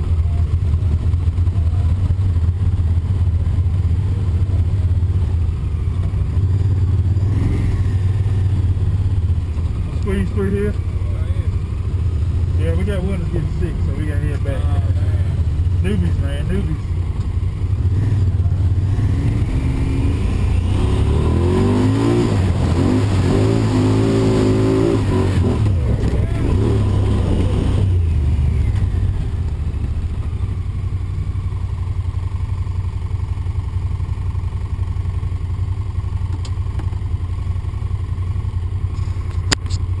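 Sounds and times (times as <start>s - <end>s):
vehicle engine revving: 0.0s - 32.0s
sharp clicks: 36.3s - 36.9s, 39.2s - 39.9s.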